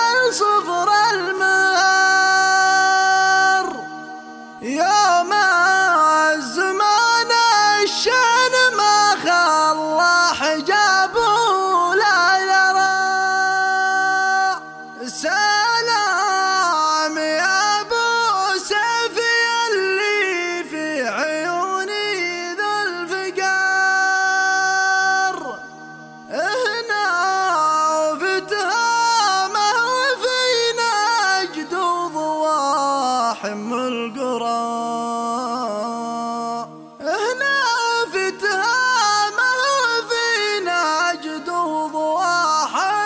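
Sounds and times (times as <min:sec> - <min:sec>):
man chanting a song: 0:00.0 - 0:43.0.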